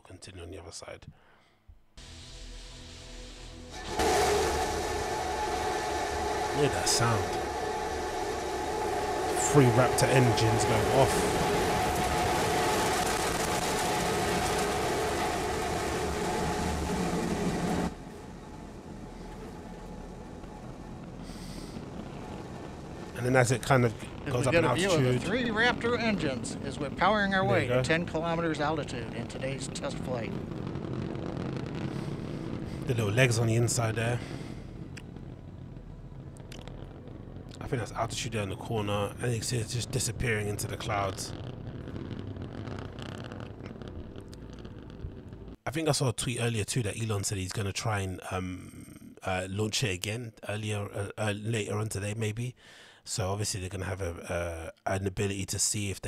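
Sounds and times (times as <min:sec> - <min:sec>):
rocket engines rumbling: 0:02.0 - 0:45.6.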